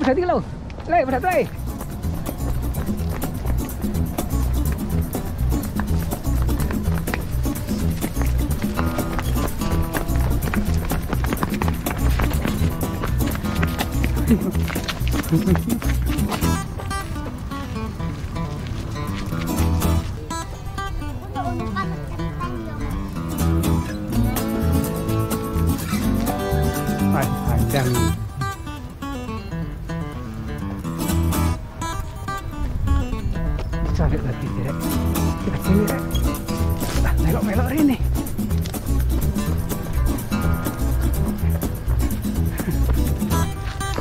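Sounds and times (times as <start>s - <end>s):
background music with low beat: 1.4s - 17.0s, 33.4s - 44.0s
voices: 19.4s - 28.4s.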